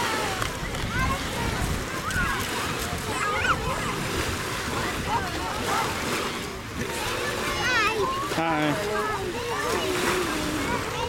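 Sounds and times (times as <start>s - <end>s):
background chatter of voices: 0.0s - 11.0s
outdoor noise: 0.0s - 11.0s.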